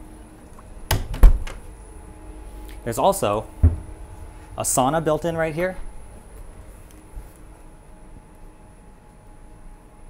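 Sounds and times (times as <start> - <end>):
heavy door thump: 0.9 - 1.6, 3.6 - 4.0.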